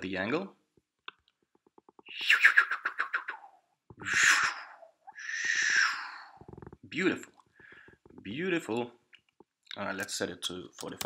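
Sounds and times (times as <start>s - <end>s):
breathy mouth whooshes: 3.3s - 6.5s.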